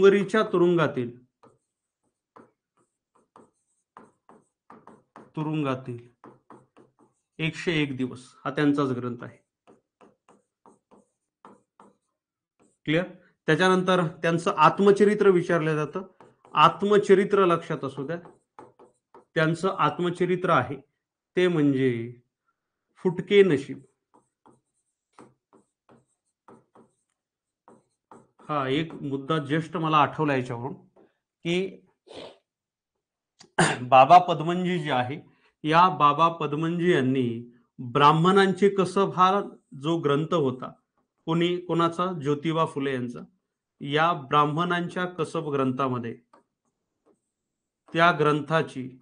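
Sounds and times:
marker pen writing on whiteboard: 0.0 - 33.6, 37.5 - 42.5, 43.3 - 49.0
pen scraping on a board: 1.3 - 5.4, 6.0 - 7.7, 9.4 - 13.0, 14.7 - 19.7, 23.7 - 29.4, 46.3 - 48.0.

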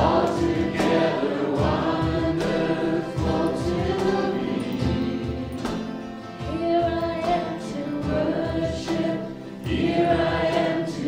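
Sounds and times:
acoustic guitars: 0.0 - 11.0
voices singing together: 0.0 - 11.0.

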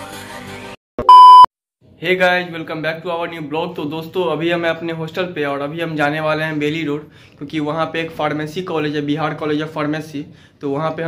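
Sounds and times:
loud electronic beep: 1.0 - 1.5.

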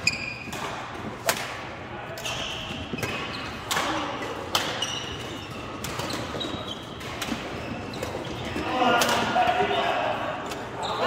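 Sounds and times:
racket hitting shuttlecock: 0.0 - 8.4
players' voices: 0.5 - 11.0.

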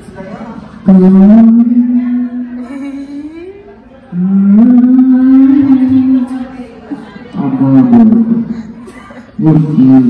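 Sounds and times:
man singing a long note: 0.8 - 3.4, 4.1 - 6.6.

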